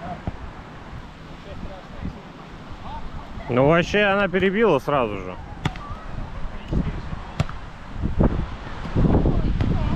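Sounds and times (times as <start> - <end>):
wind buffeting microphone: 5.4 - 9.9
volleyball hit by hand: 7.4 - 7.6.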